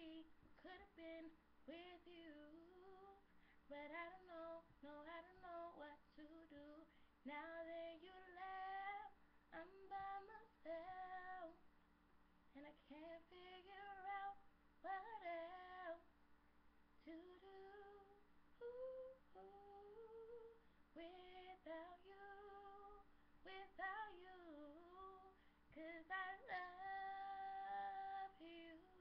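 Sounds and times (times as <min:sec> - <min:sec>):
woman singing a cappella: 0:00.0 - 0:11.6, 0:12.5 - 0:16.1, 0:17.0 - 0:29.0.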